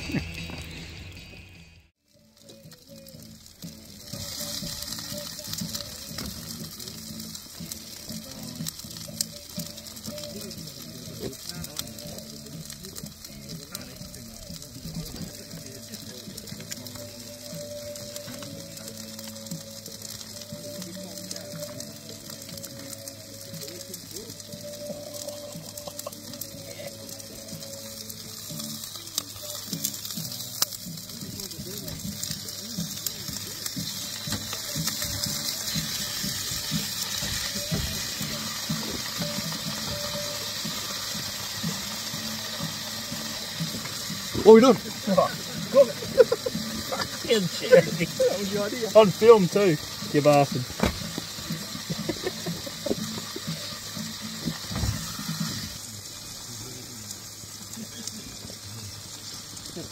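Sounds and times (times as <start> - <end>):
food frying in a pan: 2.0 - 59.9.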